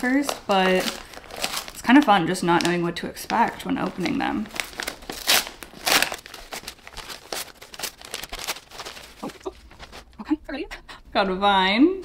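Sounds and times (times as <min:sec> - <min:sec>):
paper crinkling and tearing: 0:00.0 - 0:10.2.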